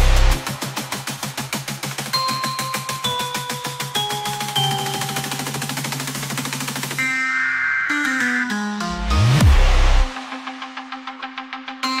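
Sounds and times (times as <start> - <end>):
held bass notes: 0.0 - 0.4.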